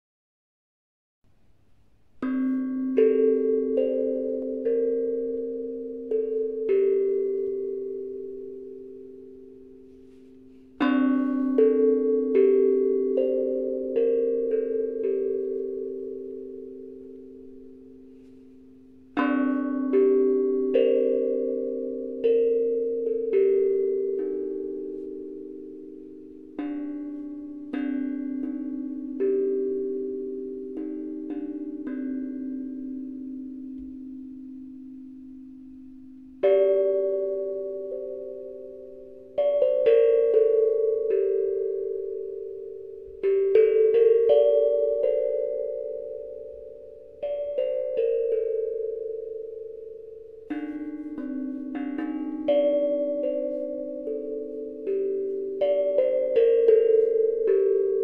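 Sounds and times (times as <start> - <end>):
steel tongue drum notes ringing: 2.2 - 58.0.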